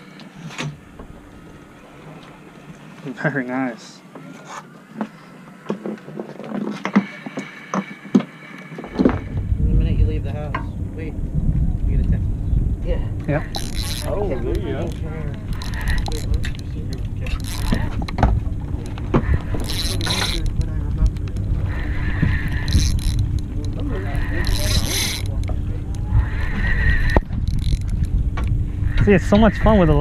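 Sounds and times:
boat engine hum: 0.0 - 30.0
wind buffeting microphone: 8.9 - 30.0
fishing reel being cranked: 13.3 - 18.2, 18.8 - 28.2.

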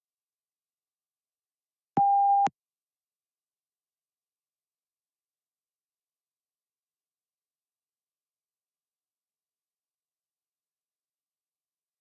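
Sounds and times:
electronic beep: 2.0 - 2.5.

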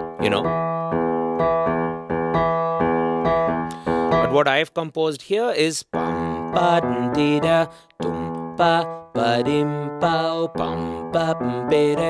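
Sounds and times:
digital piano bass line: 0.0 - 4.4, 6.0 - 12.0.

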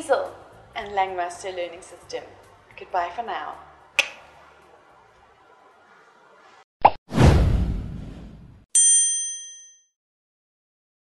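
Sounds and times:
short pop: 4.0 - 4.2
loud whoosh: 4.2 - 8.6
bright chime ding: 8.8 - 9.9.

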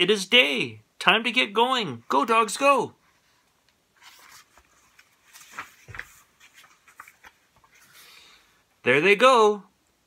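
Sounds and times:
paper pages rustling: 3.2 - 8.5.

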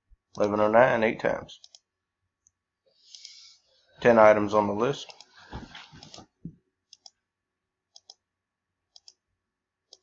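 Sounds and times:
computer mouse clicks: 1.6 - 3.4, 6.9 - 7.2, 7.9 - 8.2, 8.9 - 9.2.

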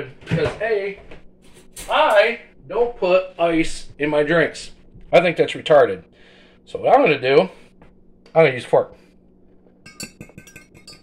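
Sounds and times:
fork clinking in a glass: 9.9 - 11.0.

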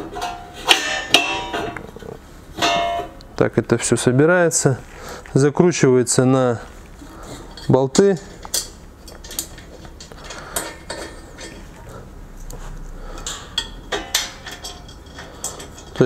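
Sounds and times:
metal clinks and knocks: 0.0 - 2.0, 2.6 - 3.2, 8.4 - 12.0, 13.2 - 16.0.

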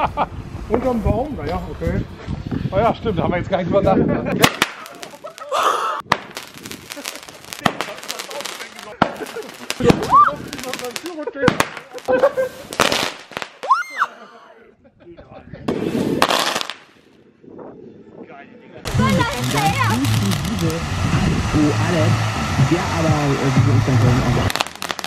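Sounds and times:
fireworks bangs and crackles: 4.3 - 13.7, 15.6 - 17.0, 18.8 - 25.0.

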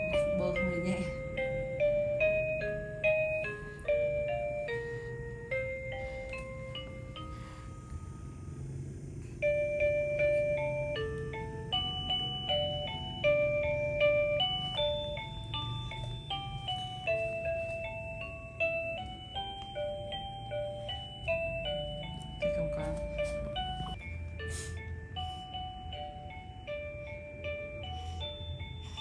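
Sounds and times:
music box lullaby: 0.0 - 29.0.

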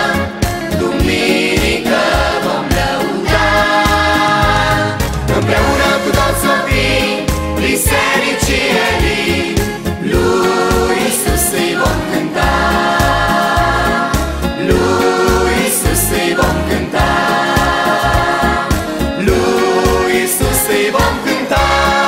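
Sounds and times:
backing track with bass beat: 0.0 - 22.0
children's choir singing: 0.0 - 22.0.

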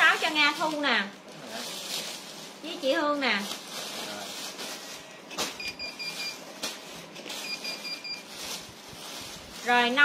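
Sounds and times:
plastic packaging crinkling: 0.0 - 10.0
high electronic beeps: 7.4 - 8.2.

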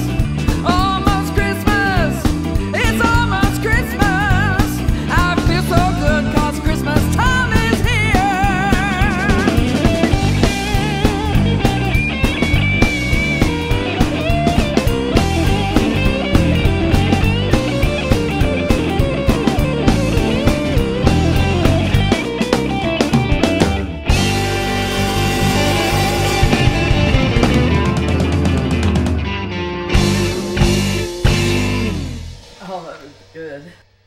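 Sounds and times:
electric guitar lead with bent notes: 0.0 - 33.5
drum kit: 0.0 - 34.0
electric bass: 0.0 - 34.0.

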